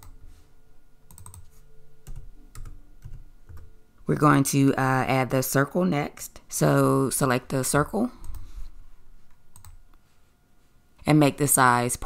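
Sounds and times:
computer keyboard typing: 1.1 - 3.7, 8.2 - 8.5, 9.5 - 9.8.

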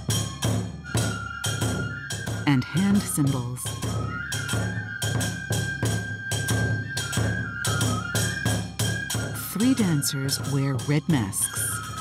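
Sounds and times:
flute playing long notes: 0.8 - 12.0.

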